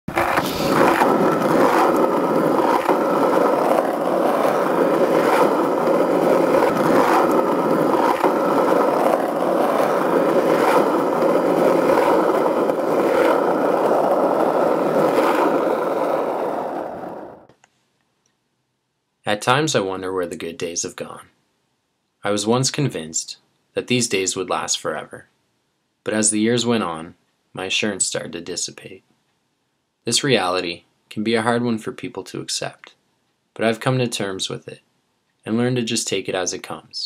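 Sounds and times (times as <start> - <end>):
skateboard wheels rolling on asphalt: 0.0 - 17.5
wheels clicking over cracks: 0.1 - 17.5.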